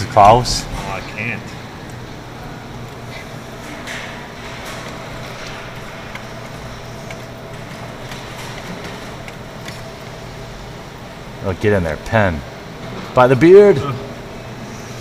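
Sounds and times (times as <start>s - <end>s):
arcade room hum: 0.0s - 15.0s.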